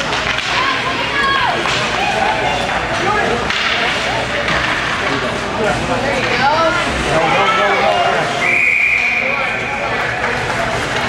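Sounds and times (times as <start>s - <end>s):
hockey sticks and puck clattering: 0.0s - 7.6s, 9.3s - 11.0s
spectators shouting: 0.4s - 2.8s
sharp puck slaps: 3.4s - 3.9s.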